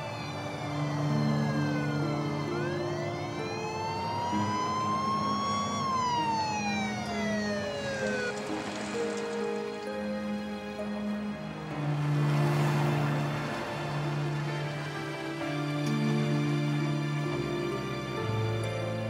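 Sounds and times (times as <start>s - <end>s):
rush of noise: 0.0s - 15.4s
background music with held notes: 0.0s - 19.0s
police siren wailing: 0.0s - 19.0s.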